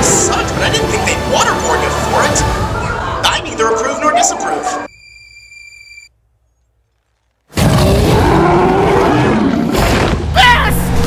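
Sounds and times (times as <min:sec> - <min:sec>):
creature's deep wavering roar: 0:07.6 - 0:10.1.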